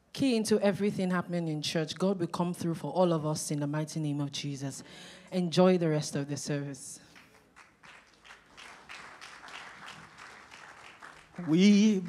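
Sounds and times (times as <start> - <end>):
congregation applauding: 7.2 - 12.0.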